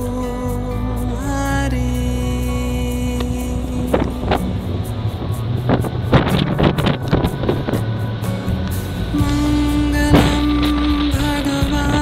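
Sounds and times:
devotional chant drone: 0.0 - 12.0
ship engine rumble: 0.0 - 12.0
wind buffeting microphone: 1.6 - 12.0.

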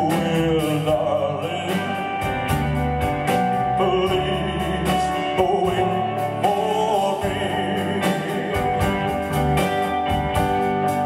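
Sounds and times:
man singing: 0.0 - 2.7, 3.3 - 9.8
live band playing a ballad: 0.0 - 11.0.

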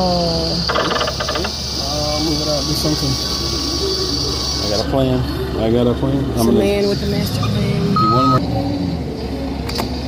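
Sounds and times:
arcade hum: 0.0 - 9.6
claw machine buzzing pulse: 0.5 - 4.8.

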